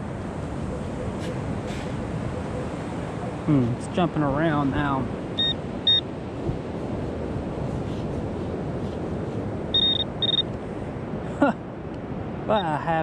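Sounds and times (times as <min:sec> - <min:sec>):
surf and wind hiss: 0:00.0 - 0:13.0
metal detector beeps: 0:05.4 - 0:06.1, 0:09.7 - 0:10.5.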